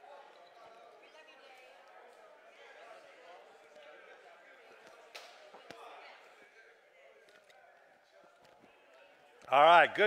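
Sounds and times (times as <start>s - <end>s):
faint background murmur: 0.0s - 10.0s.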